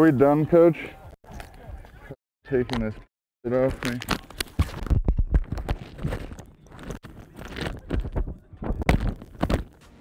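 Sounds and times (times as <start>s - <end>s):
microphone thuds and rumble: 4.5s - 9.8s.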